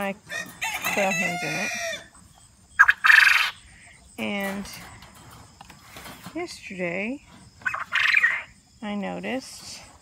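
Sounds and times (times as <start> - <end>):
quail crowing: 0.2 - 4.0, 7.6 - 8.6.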